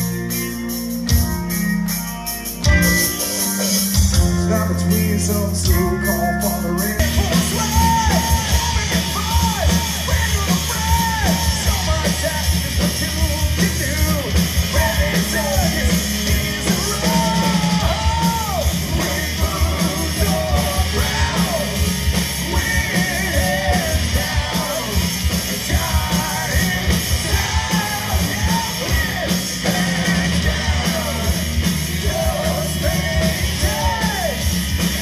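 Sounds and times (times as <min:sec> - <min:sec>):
distorted electric guitars: 0:00.0 - 0:35.0
singer singing and shouting: 0:04.1 - 0:35.0
fast dense drums: 0:06.8 - 0:35.0.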